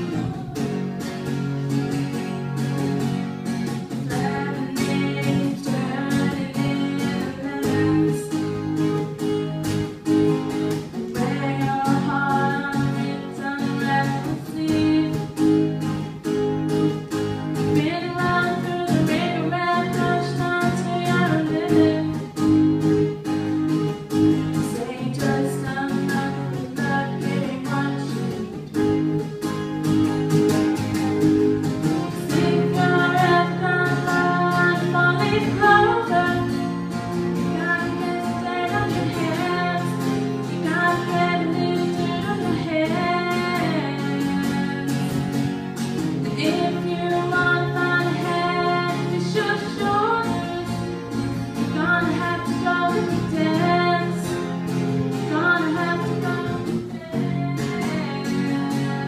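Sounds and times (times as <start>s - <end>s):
woman singing: 0.0s - 1.1s, 3.6s - 16.2s, 17.5s - 29.6s, 31.6s - 59.0s
acoustic guitar strumming: 0.0s - 59.0s.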